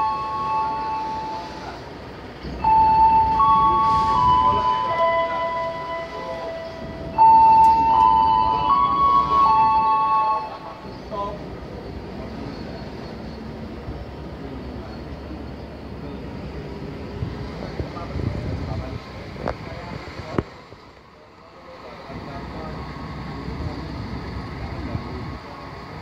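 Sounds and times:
train wheels squealing: 0.0 - 18.1
train wagons rumbling: 0.0 - 26.0.

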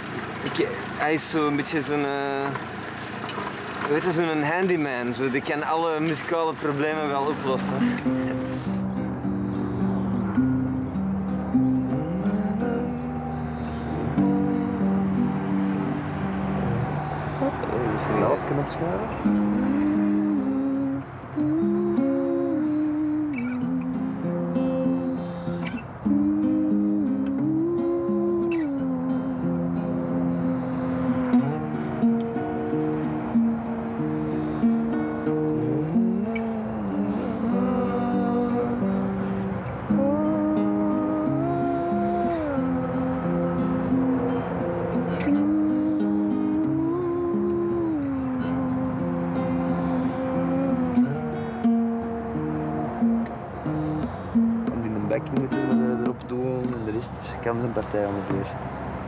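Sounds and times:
acoustic guitar playing: 0.0 - 59.0
man humming: 7.1 - 9.1, 19.4 - 24.5, 26.0 - 31.6, 35.6 - 44.3, 45.0 - 51.3.

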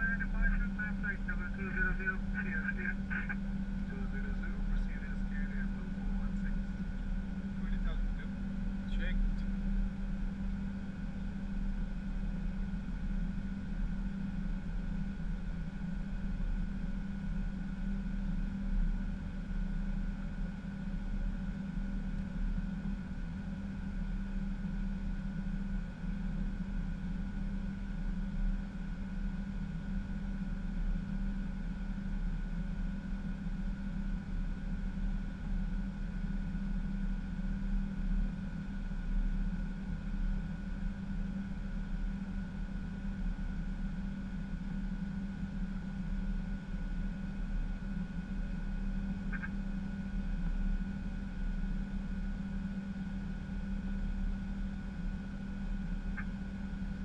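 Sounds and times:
drone of engines and airflow: 0.0 - 57.0
low hum: 0.0 - 57.0.

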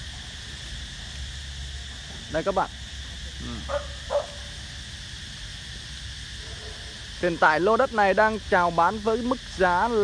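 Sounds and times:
outdoor background noise: 0.0 - 10.0
dog yelping: 3.7 - 4.4.

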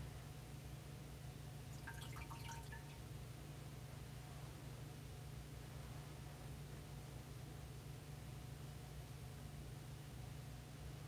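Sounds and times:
water trickling into metal chalice: 1.7 - 3.0
ringing water drips: 1.8 - 3.0.

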